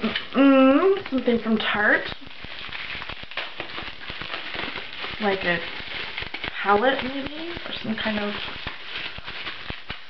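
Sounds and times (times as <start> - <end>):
bubble wrap crinkling: 0.0 - 10.0.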